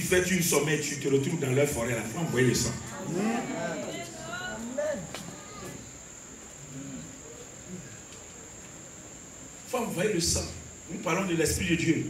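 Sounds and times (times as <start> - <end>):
steady high-pitched whine: 0.0 - 12.0
faint low voices: 1.7 - 9.7.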